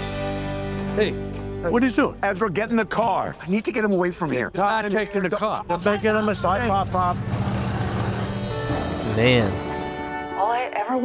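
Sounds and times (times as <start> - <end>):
music: 0.0 - 11.0
car driving past: 5.6 - 10.0.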